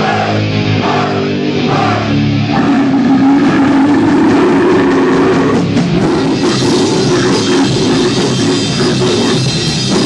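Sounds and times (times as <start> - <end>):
distorted electric guitar: 0.0 - 10.0
rock band playing live: 0.0 - 10.0.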